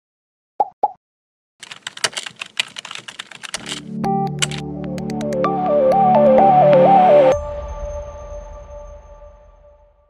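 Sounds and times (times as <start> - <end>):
keyboard typing clicks: 1.6 - 5.4.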